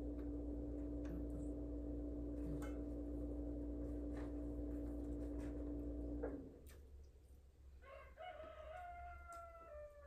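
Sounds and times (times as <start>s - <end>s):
steady hum: 0.0s - 7.6s
rooster crowing: 7.8s - 10.0s.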